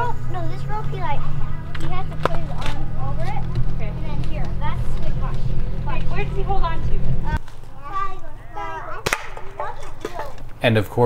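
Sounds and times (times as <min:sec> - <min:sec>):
children's voices: 0:00.0 - 0:10.6.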